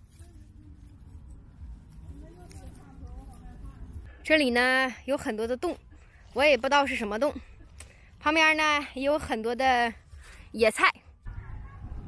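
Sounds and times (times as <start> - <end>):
rustling of dry grass and leaves: 0.0 - 11.4.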